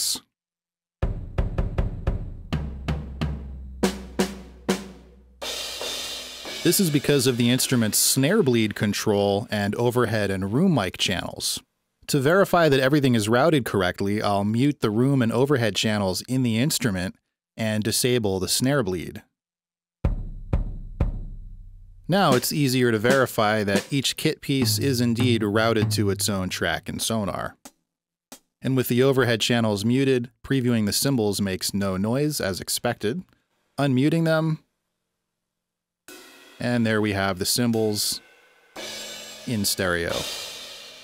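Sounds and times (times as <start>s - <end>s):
snare drum hit: 22.2s - 24.0s, 24.6s - 26.6s
low drum hits: 24.6s - 26.6s.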